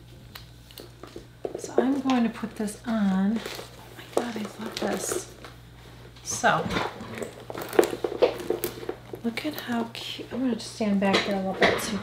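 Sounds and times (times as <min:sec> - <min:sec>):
handbag rustling: 0:01.5 - 0:10.4.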